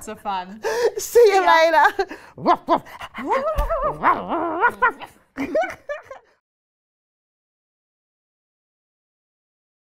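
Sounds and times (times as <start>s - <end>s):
person imitating dog yips: 3.3s - 5.2s.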